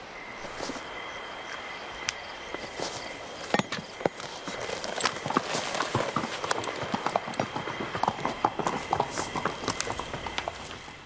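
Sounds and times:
footsteps on stone floor: 0:00.4 - 0:00.9, 0:02.5 - 0:11.0.

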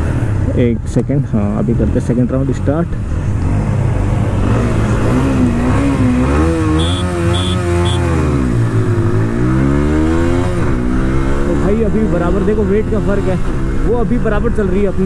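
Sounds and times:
motorcycle engine accelerating: 0:03.0 - 0:14.2
short high beeps: 0:06.8 - 0:08.0.

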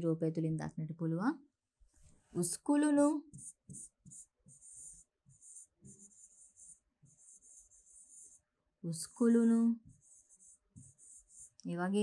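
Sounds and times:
pen scratching on a board: 0:03.3 - 0:08.4, 0:09.8 - 0:11.6.

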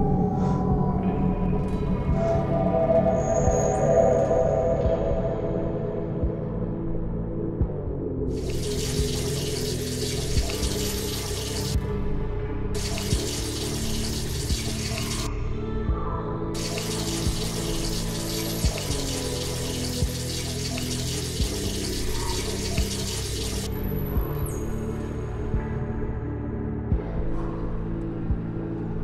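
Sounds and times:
dark background music: 0:00.0 - 0:29.0
running water hissing: 0:08.3 - 0:11.8, 0:12.8 - 0:15.3, 0:16.6 - 0:23.8.

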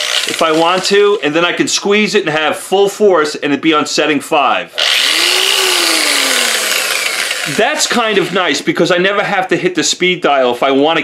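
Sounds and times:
orbital polisher whining: 0:04.8 - 0:08.4.

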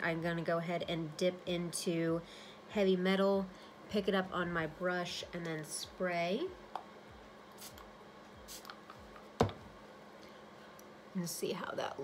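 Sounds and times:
setting spray hisses: 0:07.5 - 0:08.8.

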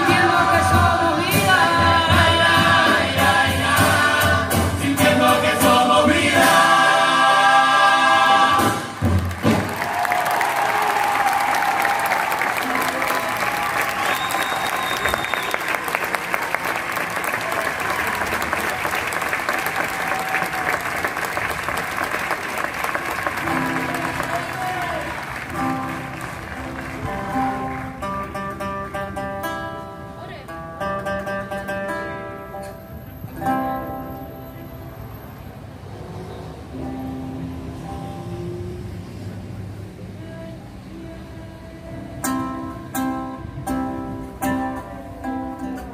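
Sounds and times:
chorus singing chords: 0:00.0 - 0:09.0
audience applause and cheering: 0:09.0 - 0:28.2.

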